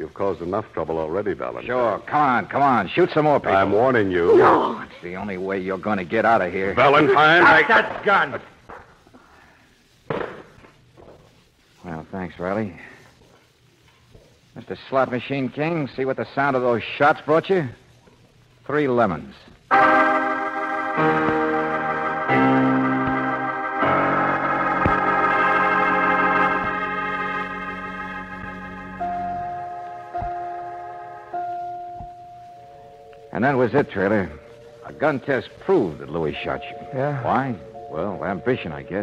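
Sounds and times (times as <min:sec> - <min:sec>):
sustained organ chord: 0:19.7 - 0:39.0.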